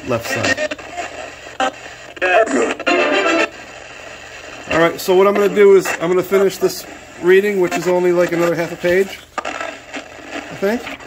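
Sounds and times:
broadcast voice snatches: 0:00.0 - 0:03.6, 0:04.4 - 0:11.0
radio static hiss: 0:00.0 - 0:11.0.

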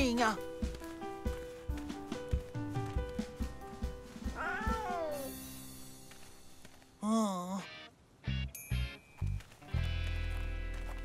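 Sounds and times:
gentle background music: 0:00.0 - 0:11.0
cartoon kitten meow: 0:04.4 - 0:05.3.

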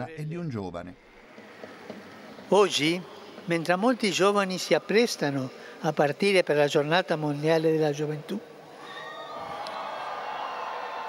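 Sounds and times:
crowd cheering and calling out: 0:08.7 - 0:11.0.

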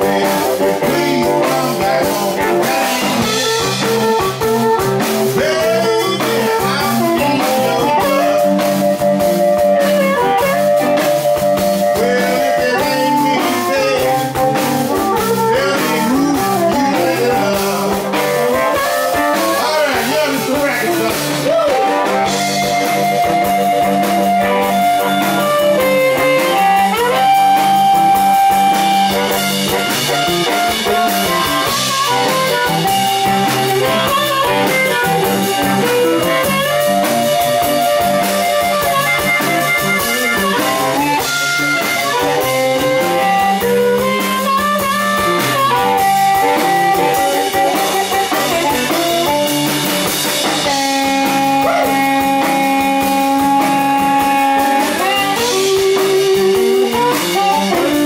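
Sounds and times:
amplified harmonica bending notes: 0:00.0 - 0:58.0
drum kit: 0:00.0 - 0:58.0
electric guitar: 0:00.0 - 0:58.0.

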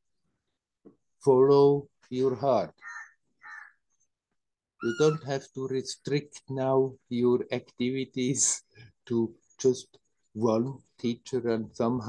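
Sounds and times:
faint bird calls: 0:02.8 - 0:03.8.

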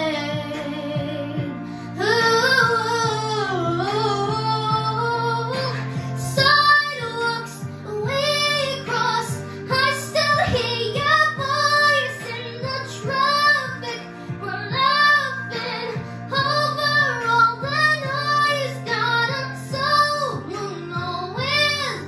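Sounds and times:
girl singing pop ballad: 0:00.0 - 0:22.0.

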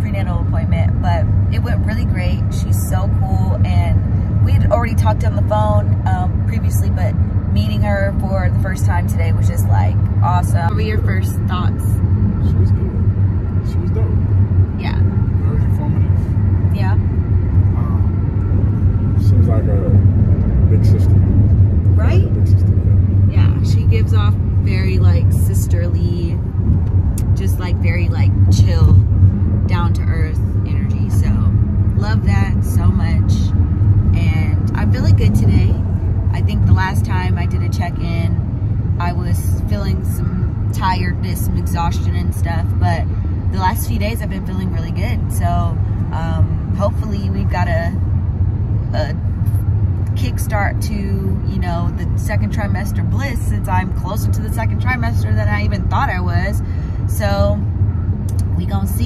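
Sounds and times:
people talking: 0:00.0 - 0:13.0, 0:13.6 - 0:14.2, 0:14.8 - 0:17.0, 0:17.7 - 0:18.1, 0:19.2 - 0:20.0, 0:20.6 - 0:21.2, 0:21.9 - 0:26.5, 0:27.2 - 0:29.0, 0:29.7 - 0:33.5, 0:34.2 - 0:38.4, 0:39.0 - 0:48.0, 0:48.9 - 0:57.6, 0:58.3 - 0:59.0
car cabin road rumble: 0:00.0 - 0:59.0.

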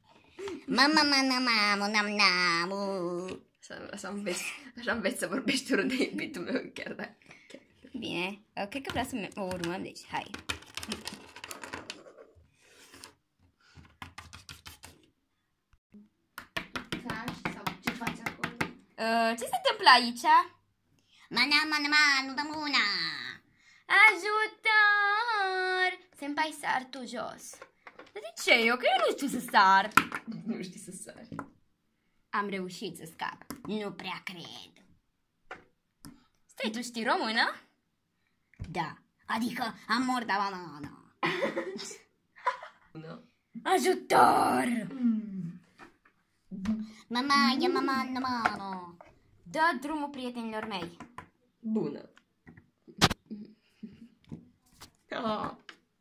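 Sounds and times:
person speaking: 0:46.5 - 0:51.0.

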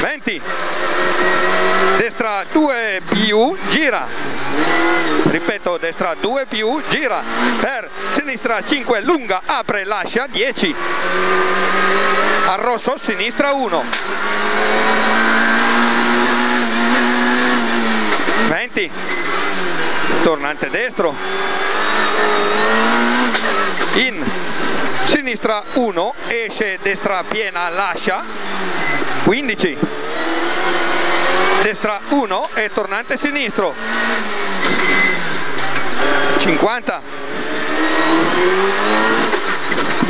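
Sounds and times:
car engine revving high: 0:00.0 - 0:40.0.

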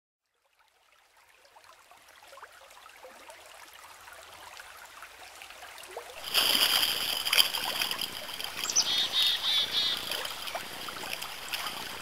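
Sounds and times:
stream of babbling water: 0:00.2 - 0:12.0.

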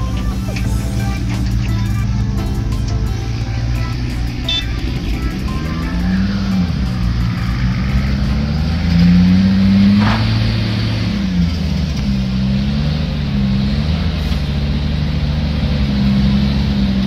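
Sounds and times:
dump truck diesel engine running: 0:00.0 - 0:17.0
excavator diesel engine working: 0:00.0 - 0:17.0.

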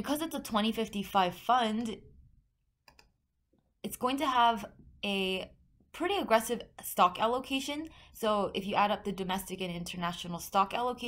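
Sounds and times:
computer mouse clicks: 0:02.8 - 0:03.2.

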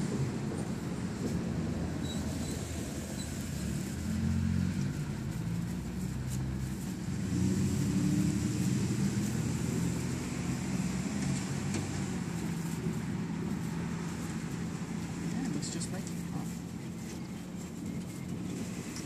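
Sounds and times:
passing cars rumbling: 0:00.0 - 0:19.0.

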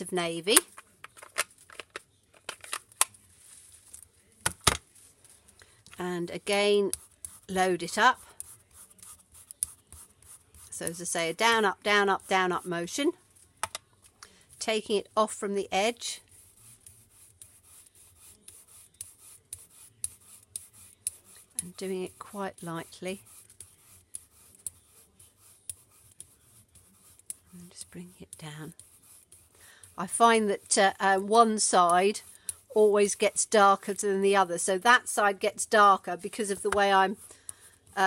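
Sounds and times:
plastic cases clicking and tapping: 0:00.7 - 0:03.1
sponge roller rubbing on paper: 0:15.9 - 0:34.0.

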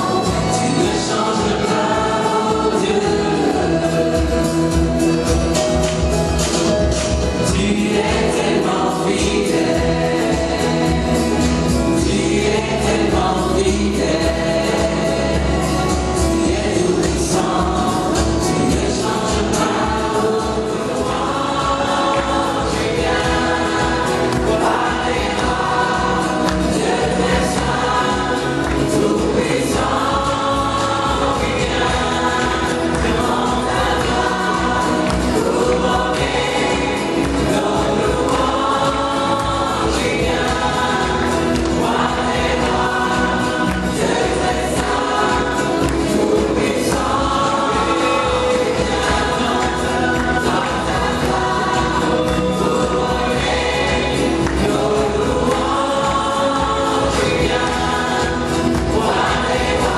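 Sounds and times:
gospel choir singing: 0:00.0 - 0:59.9
instrumental accompaniment: 0:00.0 - 0:59.9.

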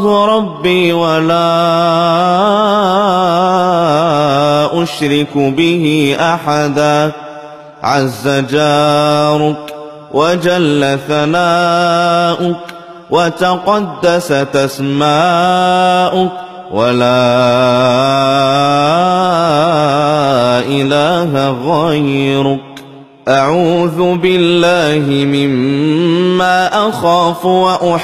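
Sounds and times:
man chanting melodically: 0:00.0 - 0:28.0.

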